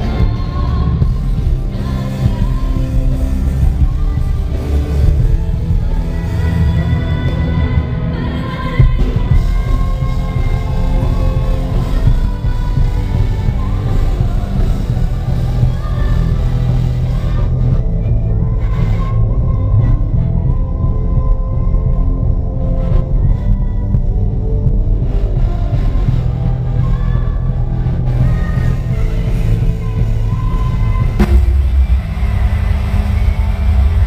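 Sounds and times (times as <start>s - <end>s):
heavy steady bass: 0.0s - 34.0s
live band playing loudly: 26.0s - 34.0s.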